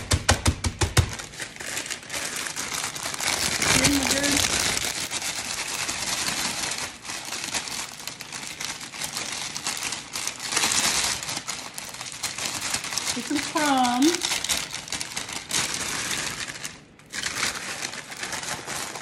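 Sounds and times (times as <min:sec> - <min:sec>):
plastic bag crinkling: 0:00.0 - 0:19.0
cookies crunching: 0:01.0 - 0:19.0.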